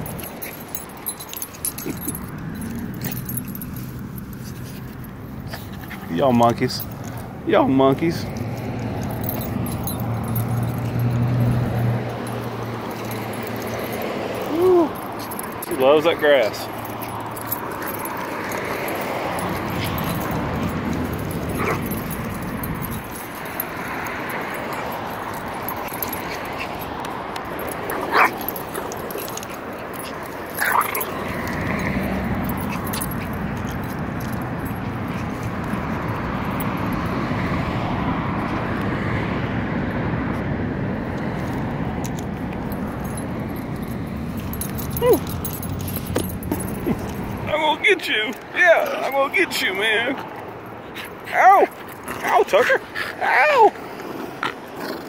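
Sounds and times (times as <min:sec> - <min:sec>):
small dogs yipping and whimpering: 0:21.2 - 0:23.6, 0:27.8 - 0:31.2, 0:44.8 - 0:45.6.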